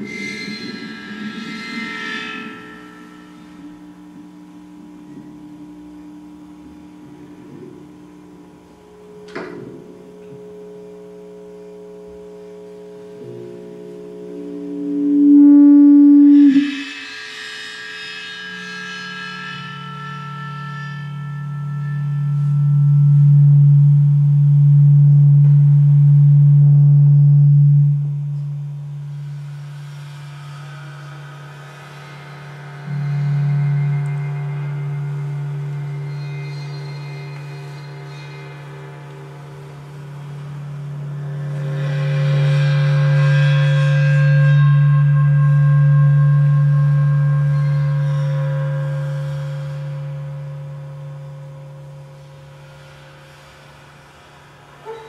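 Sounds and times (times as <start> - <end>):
low drone: 0.0 - 54.1
gongs ringing: 8.3 - 17.5, 32.8 - 52.6.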